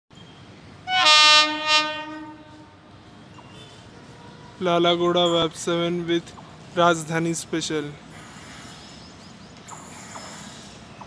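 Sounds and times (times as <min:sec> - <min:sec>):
locomotive horn blast: 0:00.8 - 0:02.8.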